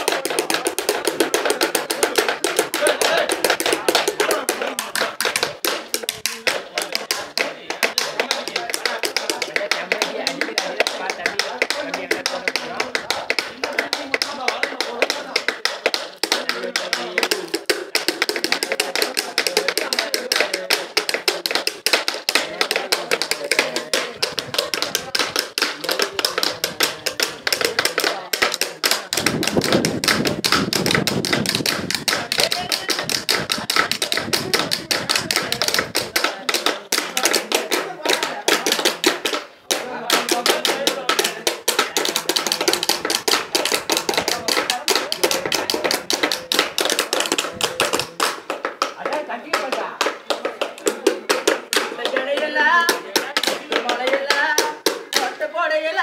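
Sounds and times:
sticks tapping on bamboo tubes: 0:00.0 - 0:56.0.

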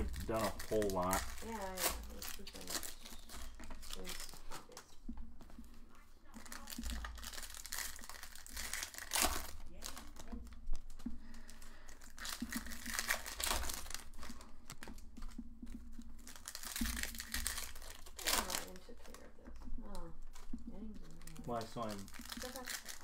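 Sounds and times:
foil wrappers tearing and crinkling: 0:00.0 - 0:05.0, 0:06.3 - 0:23.0.

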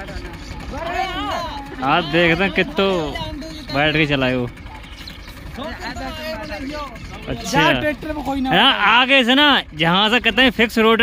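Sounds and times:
faint voices talking: 0:00.0 - 0:11.0
tractor diesel engine idling: 0:00.0 - 0:11.0.

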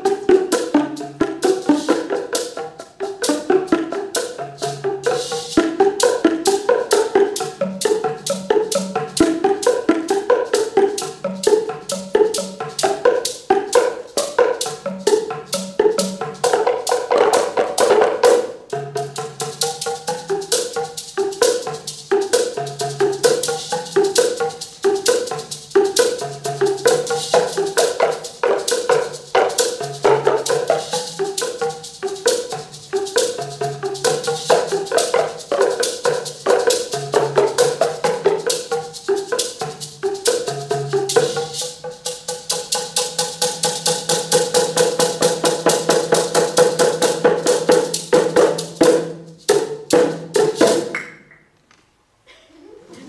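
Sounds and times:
boomwhacker ensemble playing: 0:00.0 - 0:51.0.

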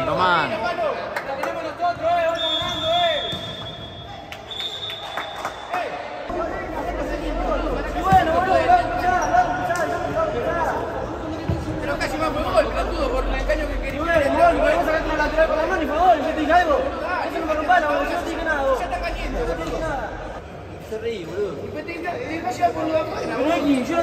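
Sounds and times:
men talking in echoing hall: 0:00.0 - 0:24.0.

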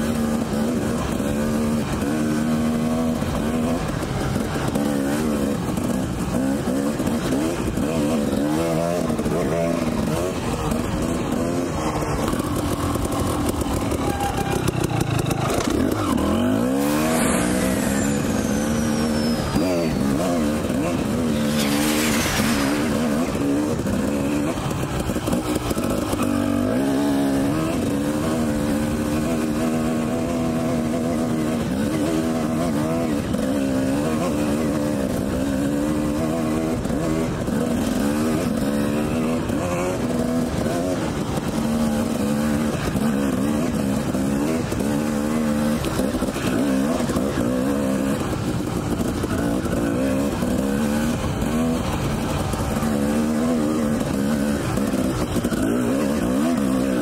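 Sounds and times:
dirt bike engine revving: 0:00.0 - 0:57.0
brief rushing noise: 0:21.4 - 0:23.4.

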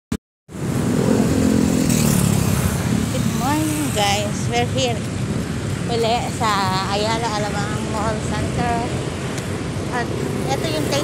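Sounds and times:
road traffic noise: 0:00.5 - 0:11.0
vehicle engine passing close: 0:00.6 - 0:04.6
person speaking: 0:05.8 - 0:09.0, 0:09.9 - 0:11.0.

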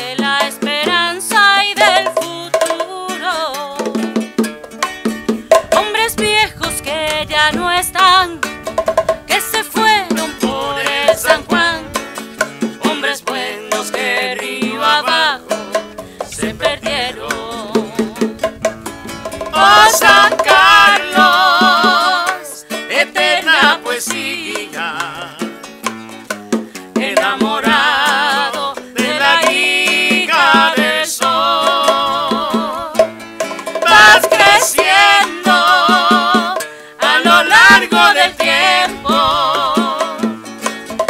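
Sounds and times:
man and woman singing a duet: 0:00.0 - 0:04.0, 0:09.3 - 0:12.0, 0:12.8 - 0:18.4, 0:19.5 - 0:25.7, 0:26.9 - 0:33.1, 0:33.8 - 0:40.4
strummed acoustic guitar: 0:00.0 - 0:41.0.

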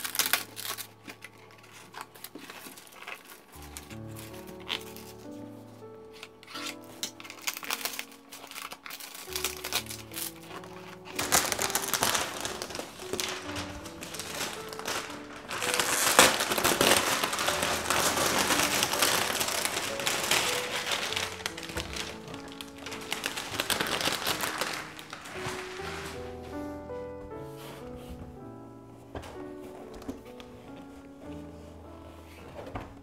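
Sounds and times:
background music: 0:00.0 - 0:33.0
plastic wrap crinkling: 0:00.0 - 0:33.0.

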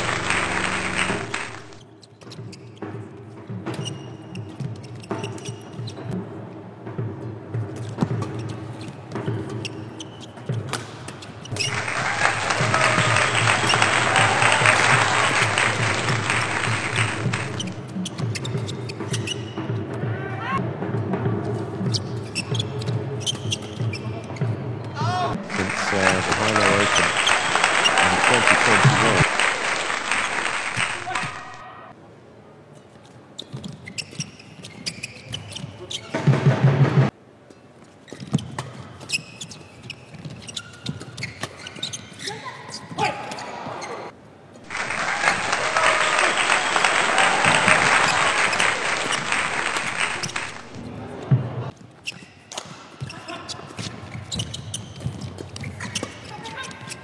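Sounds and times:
crowd noise: 0:00.0 - 0:01.8, 0:11.6 - 0:17.9, 0:25.3 - 0:31.9, 0:43.6 - 0:51.7
footsteps on court: 0:11.5 - 0:17.8.

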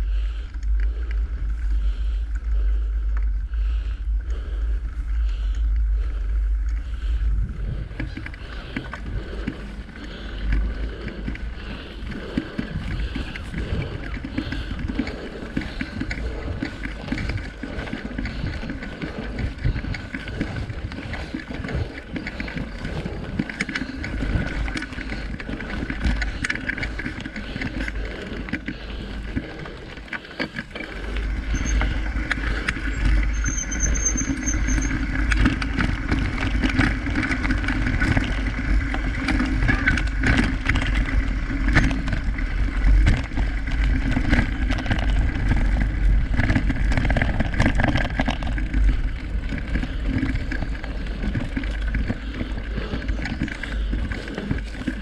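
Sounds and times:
bike rattling over rough ground: 0:00.0 - 0:55.0
wind rumbling on microphone: 0:00.0 - 0:55.0.

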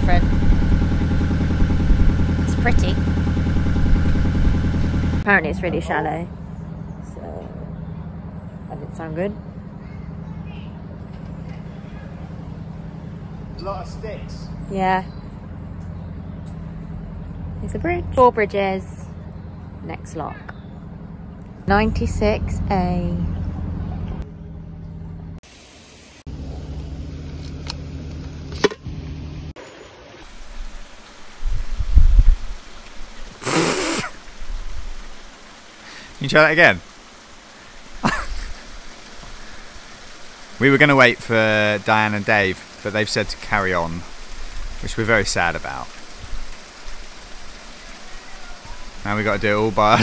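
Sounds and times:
diesel engine running: 0:00.0 - 0:25.4, 0:26.3 - 0:29.6
loud low rumbles: 0:00.0 - 0:25.4
water rushing: 0:29.6 - 0:50.0.

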